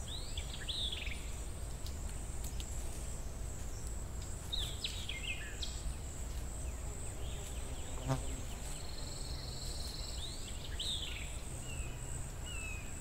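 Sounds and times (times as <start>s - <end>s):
bird chirping: 0.0s - 1.4s, 4.5s - 13.0s
insects droning: 0.0s - 13.0s.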